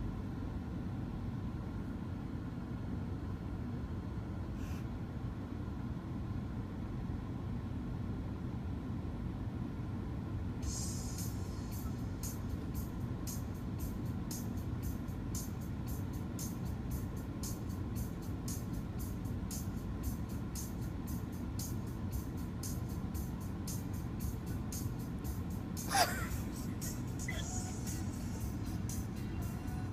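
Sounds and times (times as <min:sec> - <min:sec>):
music from car stereo: 0:10.6 - 0:29.9.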